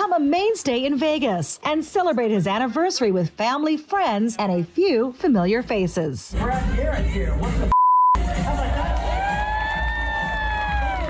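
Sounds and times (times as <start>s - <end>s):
theatre crowd noise: 8.2s - 11.0s.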